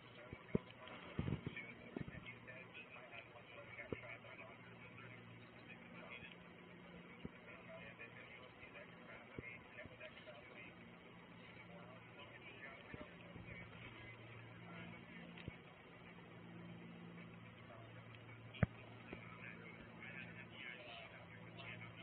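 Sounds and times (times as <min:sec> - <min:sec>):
faint indistinct voices: 0:00.0 - 0:22.0
low steady hum: 0:00.0 - 0:22.0.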